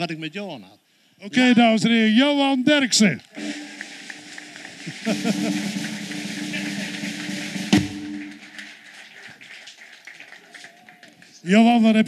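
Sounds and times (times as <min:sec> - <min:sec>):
audience applauding: 0:03.3 - 0:11.6
music playing: 0:03.4 - 0:09.0.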